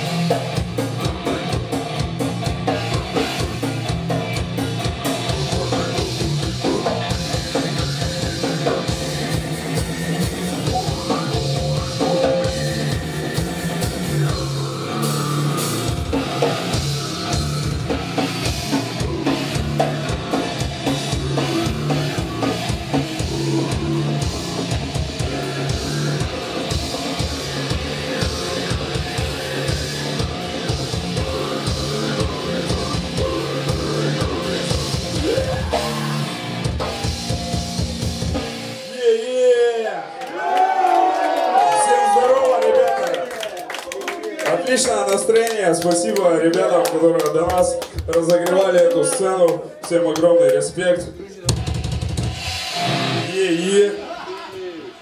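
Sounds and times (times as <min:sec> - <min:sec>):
fast dense drumming: 0:00.0 - 0:38.8, 0:46.5 - 0:54.1
heavy metal guitars and bass: 0:00.0 - 0:39.7, 0:51.4 - 0:55.0.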